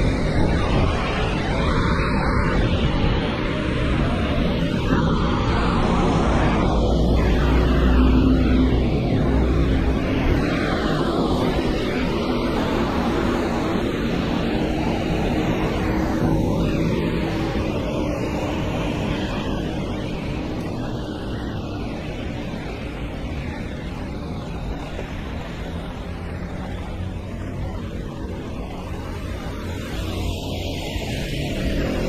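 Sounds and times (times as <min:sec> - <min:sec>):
tyres on wet street: 0:00.0 - 0:32.0.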